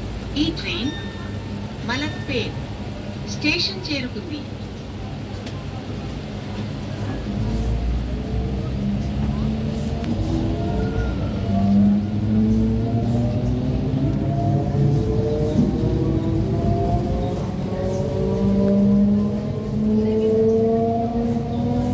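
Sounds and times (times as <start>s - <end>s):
train rumble: 0.0s - 21.9s.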